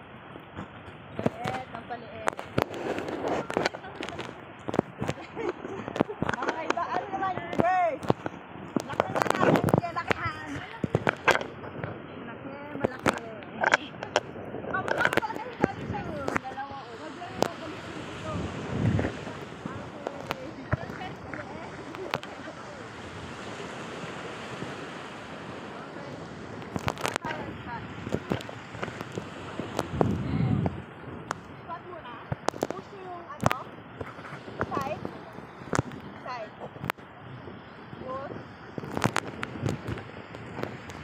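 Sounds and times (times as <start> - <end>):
surf: 0.0 - 41.0
wind: 0.0 - 41.0
distant voices: 0.9 - 41.0.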